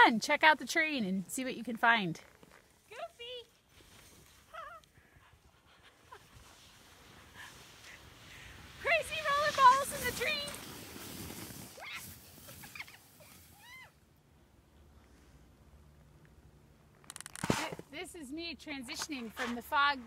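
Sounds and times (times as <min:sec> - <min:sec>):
skis hissing through powder snow: 0:03.7 - 0:04.5, 0:05.4 - 0:13.8.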